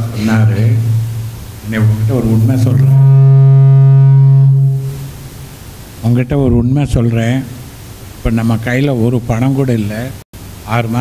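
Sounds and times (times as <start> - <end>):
faint room noise: 0.0 - 11.0
man holding a long vowel: 1.7 - 5.1.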